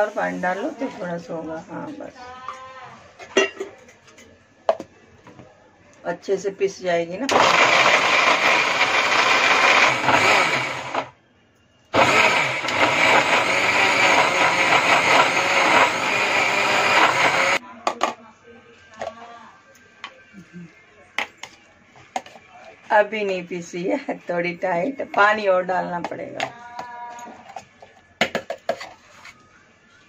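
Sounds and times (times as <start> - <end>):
mixer grinder running: 7.3 - 11.1, 11.9 - 17.6.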